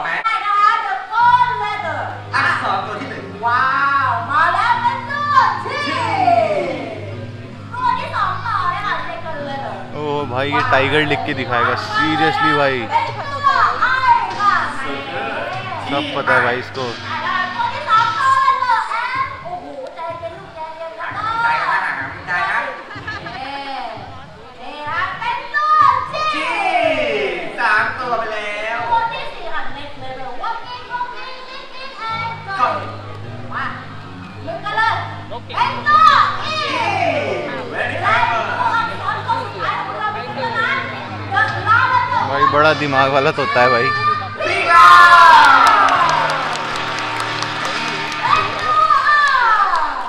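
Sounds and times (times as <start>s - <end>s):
faint background music: 0.0s - 50.0s.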